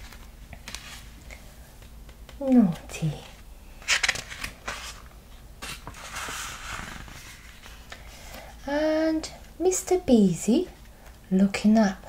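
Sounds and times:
rustle of pages sliding: 0.0s - 1.4s, 3.8s - 8.0s
book pages turning: 0.0s - 2.8s, 3.8s - 8.0s.

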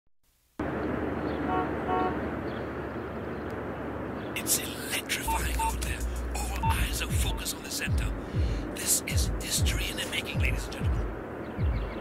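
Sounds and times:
outdoor background noise: 0.3s - 12.0s
horn toots: 1.4s - 2.2s.

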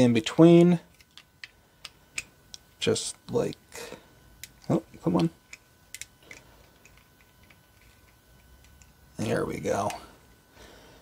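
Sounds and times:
plastic toy parts clicking: 0.9s - 2.6s.

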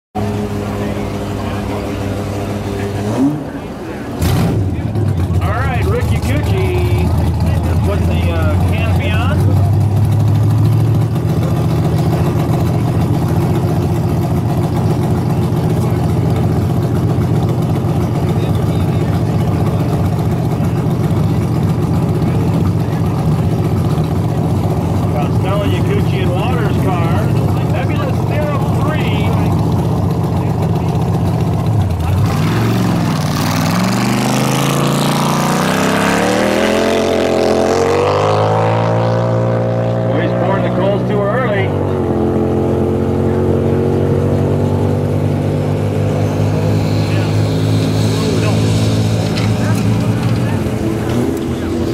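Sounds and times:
motorcycle engine idling: 4.8s - 32.2s.

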